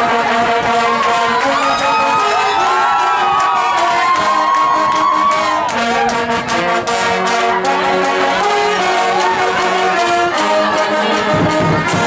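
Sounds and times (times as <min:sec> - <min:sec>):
brass band holding notes: 0:00.0 - 0:12.0
crowd cheering and shouting: 0:00.0 - 0:12.0.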